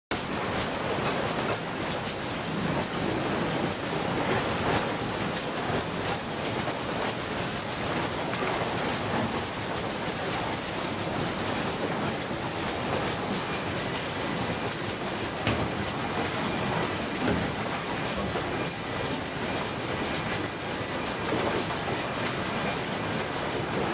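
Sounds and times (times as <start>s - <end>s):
conveyor machines rattling: 0.2s - 23.9s.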